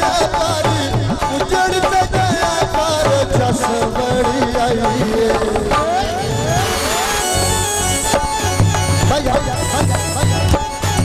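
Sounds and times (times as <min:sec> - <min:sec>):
harmonium melody: 0:00.0 - 0:11.0.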